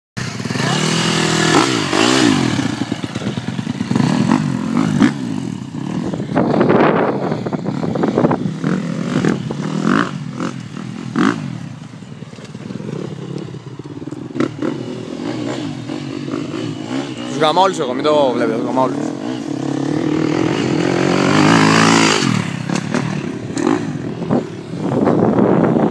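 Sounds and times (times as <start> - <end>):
motocross bike engine revving: 0.2 - 25.6.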